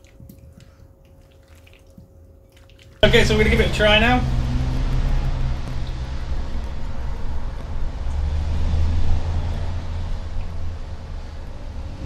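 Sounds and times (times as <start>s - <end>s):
low rumble: 3.0s - 12.0s.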